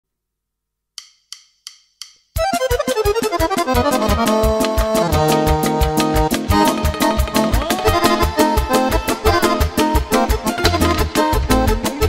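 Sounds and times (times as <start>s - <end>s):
sharp count-in clicks: 1.0s - 9.0s
steady drum beats: 1.0s - 12.0s
accordion running down scale: 2.4s - 12.0s.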